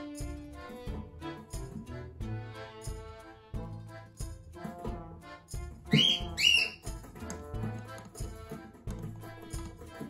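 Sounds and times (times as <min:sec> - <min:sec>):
music with steady beat: 0:00.0 - 0:10.0
cockatiel whistled chirps: 0:05.9 - 0:06.9.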